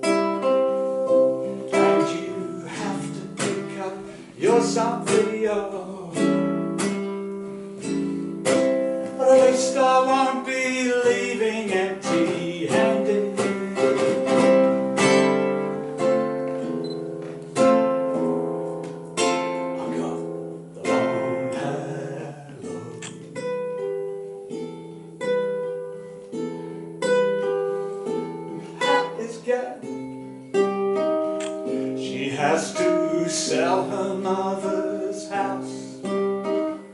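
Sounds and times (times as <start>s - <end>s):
fingerstyle acoustic guitar: 0.0s - 36.9s.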